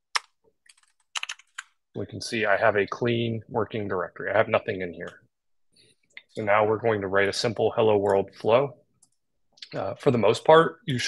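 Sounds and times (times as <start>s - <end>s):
keyboard typing clicks: 0.1s - 1.7s.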